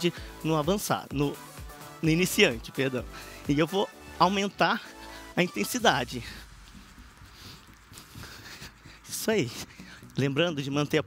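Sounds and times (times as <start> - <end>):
person breathing: 0.1 - 0.4, 3.0 - 3.5, 4.8 - 5.4, 6.2 - 10.2.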